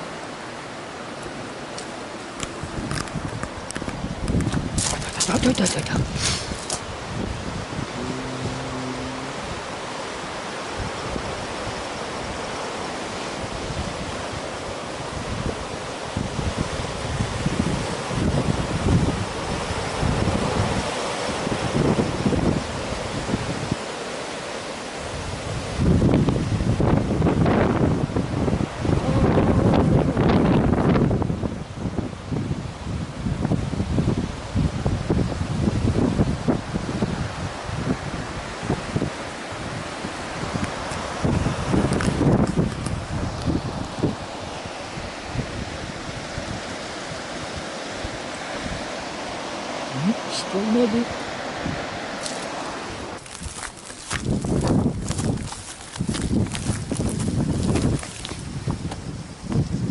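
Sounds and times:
steady rushing hiss: 0:00.0 - 0:25.9
wind buffeting microphone: 0:02.3 - 0:23.9, 0:25.0 - 0:50.3, 0:51.0 - 0:59.9.

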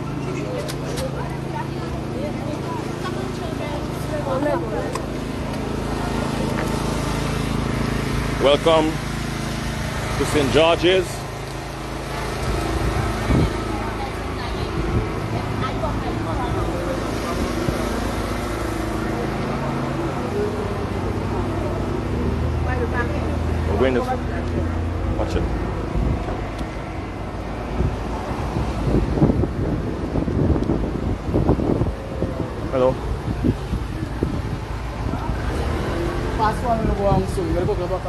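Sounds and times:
people's voices: 0:00.0 - 0:09.1, 0:10.0 - 0:28.8, 0:30.7 - 0:38.0
vehicle engines passing: 0:00.0 - 0:38.0.

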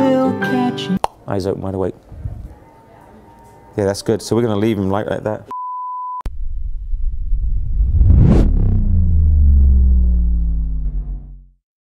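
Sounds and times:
whoosh: 0:06.3 - 0:11.5
deep sustained boom: 0:06.3 - 0:11.6
low rumble: 0:06.3 - 0:11.6.

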